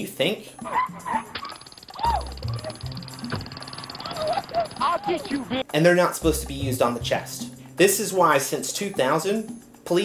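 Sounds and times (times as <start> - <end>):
background music with bass: 2.0 - 10.0.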